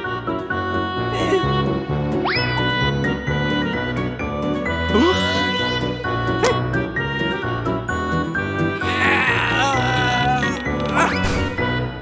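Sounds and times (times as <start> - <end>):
cartoon background music: 0.0 - 12.0
bleat-like cartoon cry: 8.9 - 11.3.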